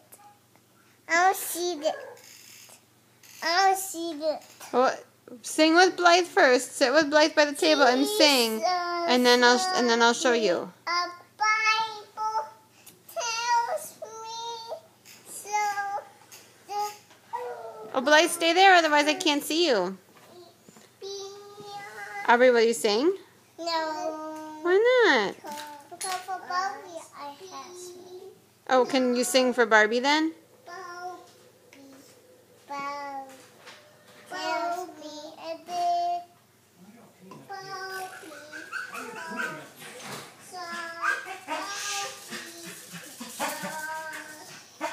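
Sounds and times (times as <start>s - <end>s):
toddler girl singing wordless notes: 7.8s - 9.9s, 10.8s - 18.4s, 20.3s - 22.3s, 23.6s - 24.7s, 25.4s - 28.4s, 30.6s - 33.6s, 34.2s - 36.4s, 37.5s - 39.7s, 40.4s - 44.8s.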